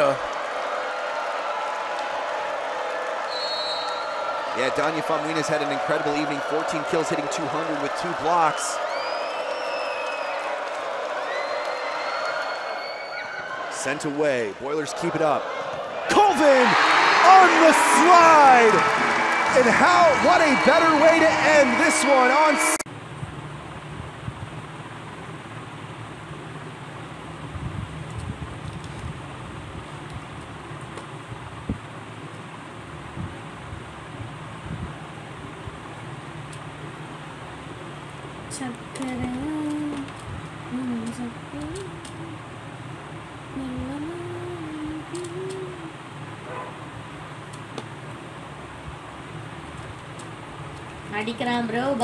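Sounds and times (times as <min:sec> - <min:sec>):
fan running: 0:04.5 - 0:08.8, 0:16.1 - 0:52.0
faint wavering voice: 0:43.6 - 0:46.0.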